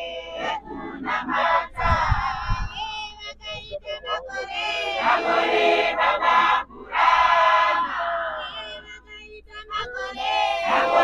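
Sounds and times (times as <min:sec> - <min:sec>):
crowd singing in chorus: 0:00.0 - 0:02.8, 0:04.0 - 0:08.9, 0:09.7 - 0:11.0.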